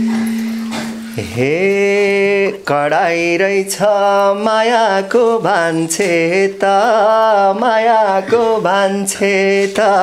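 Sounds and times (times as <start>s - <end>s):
steady held tone: 0.0s - 2.8s
man singing folk song: 1.1s - 10.0s.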